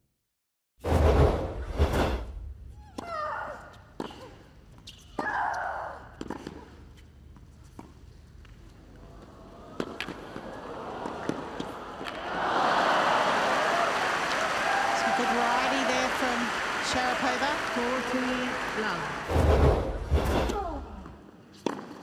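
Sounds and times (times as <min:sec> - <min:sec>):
crowd applause and cheering: 0:09.5 - 0:19.5.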